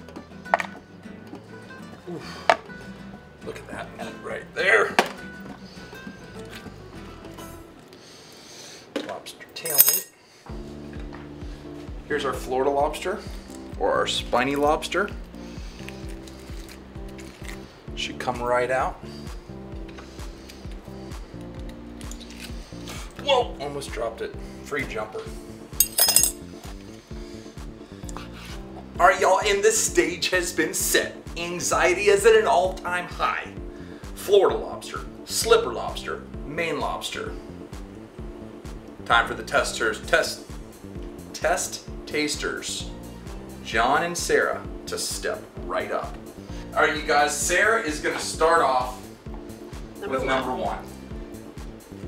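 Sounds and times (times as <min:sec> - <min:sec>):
background music: 0:00.0 - 0:08.9, 0:09.7 - 0:52.0
lobster shell cracking: 0:22.0 - 0:22.6
bright clink: 0:25.8 - 0:26.4
music with a steady beat: 0:33.6 - 0:34.2, 0:42.9 - 0:43.6, 0:49.0 - 0:50.0, 0:50.9 - 0:52.0.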